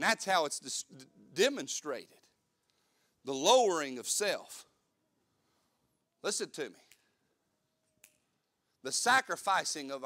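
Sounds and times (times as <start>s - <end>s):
man speaking: 0.0s - 2.2s, 3.2s - 4.8s, 6.2s - 6.9s, 8.8s - 10.0s.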